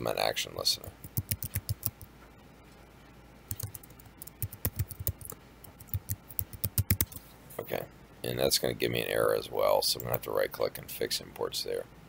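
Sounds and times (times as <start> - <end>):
typing on a keyboard: 1.0 - 2.1, 3.5 - 7.2.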